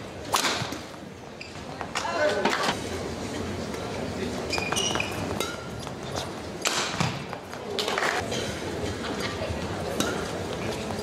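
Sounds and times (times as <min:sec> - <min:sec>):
racket hitting shuttlecock: 0:00.3 - 0:00.9, 0:06.6 - 0:08.1.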